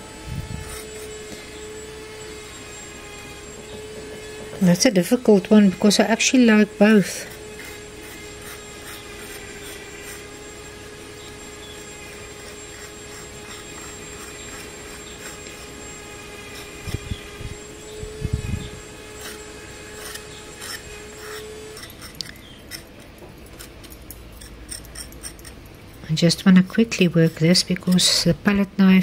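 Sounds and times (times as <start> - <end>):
metal tool scraping wet paste: 7.0 - 10.3, 19.2 - 22.9, 23.6 - 25.6.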